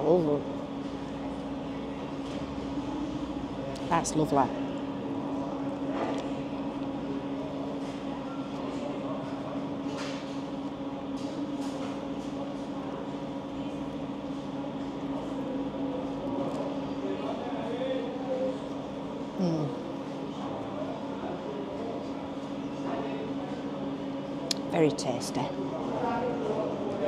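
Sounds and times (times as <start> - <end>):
faint murmur of voices: 0.0 - 27.0.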